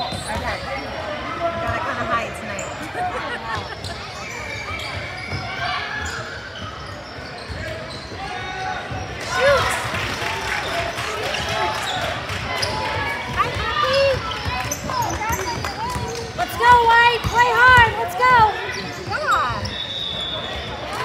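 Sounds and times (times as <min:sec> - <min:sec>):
voices calling out: 0:00.0 - 0:21.0.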